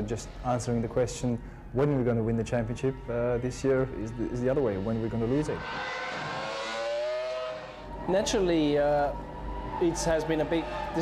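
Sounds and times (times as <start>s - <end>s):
racing car engine high revs: 4.9s - 8.5s.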